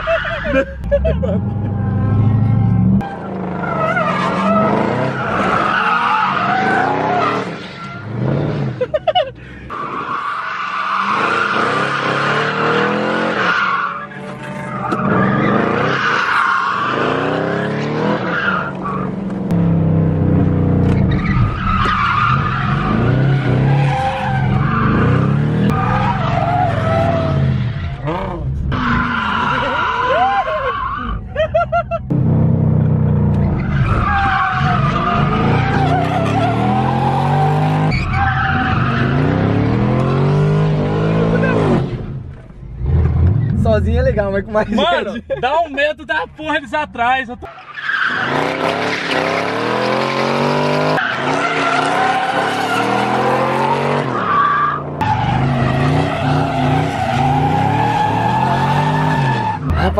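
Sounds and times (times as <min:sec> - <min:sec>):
car engine revving: 0:00.0 - 0:31.2, 0:32.1 - 0:45.0, 0:47.4 - 0:59.9.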